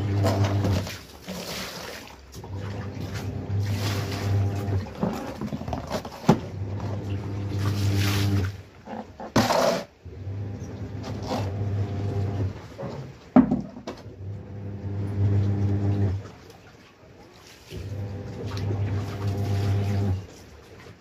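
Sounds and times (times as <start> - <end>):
washing machine motor humming: 0.0 - 0.9, 2.4 - 5.6, 6.4 - 8.7, 10.0 - 13.2, 14.0 - 16.4, 17.7 - 20.3
wet clothes rustling and splashing: 0.0 - 10.0, 16.2 - 21.0.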